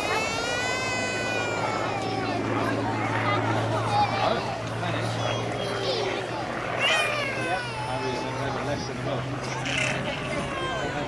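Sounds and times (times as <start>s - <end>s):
people talking: 0.0s - 11.0s
propeller plane engine drone: 0.0s - 11.0s.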